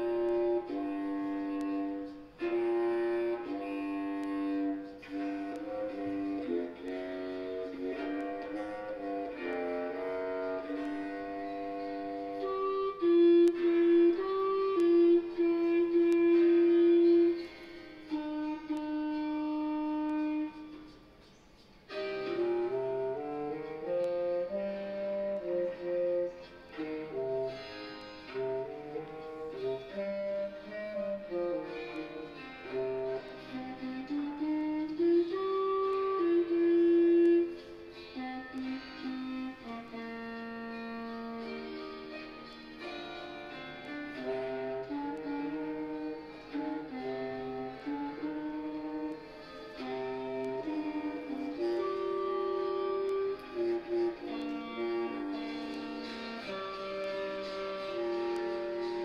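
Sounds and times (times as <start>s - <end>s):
clarinets playing pop melody: 0.0s - 59.0s.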